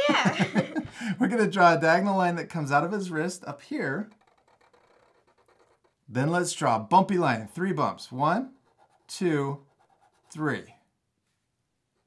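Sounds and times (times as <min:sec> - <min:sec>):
marker scratching on paper: 0:03.0 - 0:06.3, 0:08.0 - 0:10.8.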